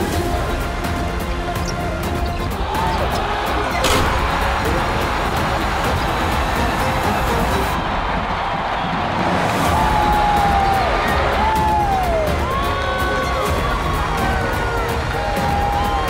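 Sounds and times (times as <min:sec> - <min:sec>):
background music: 0:00.0 - 0:16.0
crowd cheering: 0:00.0 - 0:16.0.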